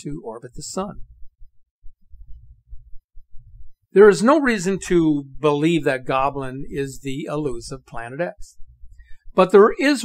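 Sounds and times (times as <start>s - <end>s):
person speaking: 0.0s - 1.2s, 3.3s - 10.0s
low bass throb: 0.5s - 9.4s.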